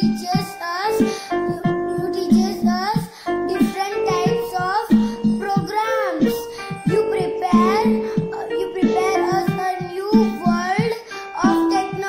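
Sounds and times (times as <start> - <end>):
girl singing: 0.0 - 12.0.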